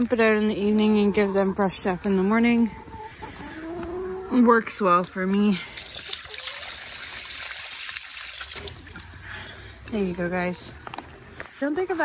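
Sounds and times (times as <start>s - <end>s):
water pouring into bowl: 5.7s - 9.1s.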